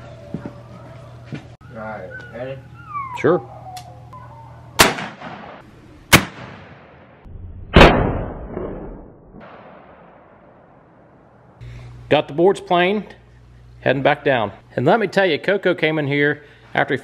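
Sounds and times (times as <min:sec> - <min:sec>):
rolling echo: 0:02.2 - 0:11.5
rifle gunshots: 0:04.8 - 0:07.2, 0:07.8 - 0:08.6.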